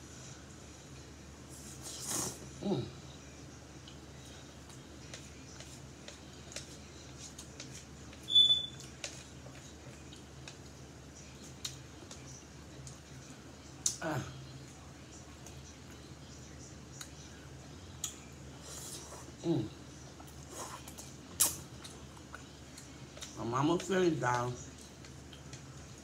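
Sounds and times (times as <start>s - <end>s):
slurping noodles: 1.5s - 2.4s
soft mouth sounds: 1.6s - 3.0s
person humming: 2.6s - 3.0s.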